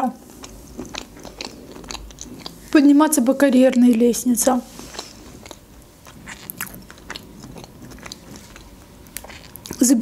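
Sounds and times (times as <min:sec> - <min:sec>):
person chewing food: 0:00.2 - 0:03.0, 0:03.6 - 0:10.0.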